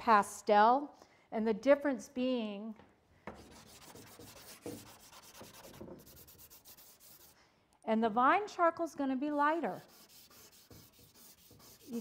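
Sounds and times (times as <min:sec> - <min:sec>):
charcoal scratching on paper: 0:03.4 - 0:07.4, 0:09.8 - 0:12.0.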